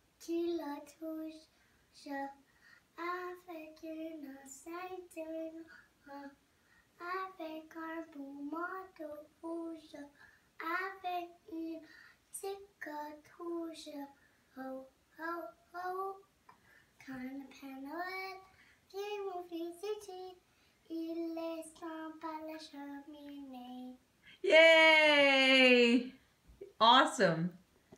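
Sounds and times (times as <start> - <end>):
young child singing: 0.0 - 24.1.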